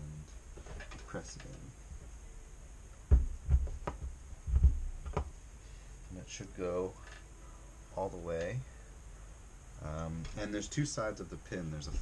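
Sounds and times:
dull thumps and knocks: 0:03.1 - 0:05.4.

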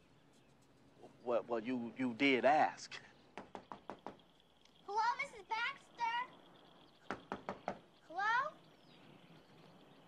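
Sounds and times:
sharp knocks: 0:03.4 - 0:04.2, 0:07.1 - 0:07.8.

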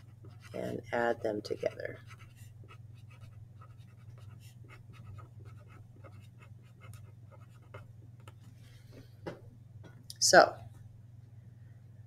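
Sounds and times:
marker scratching on paper: 0:00.0 - 0:07.9.

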